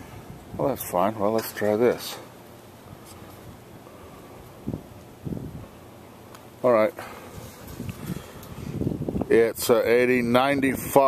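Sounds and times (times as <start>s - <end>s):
wind buffeting microphone: 4.5s - 5.8s, 7.0s - 11.0s.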